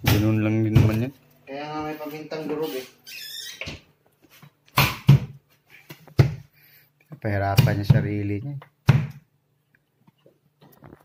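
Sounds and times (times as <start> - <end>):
refrigerator door squeak: 2.6 - 3.9.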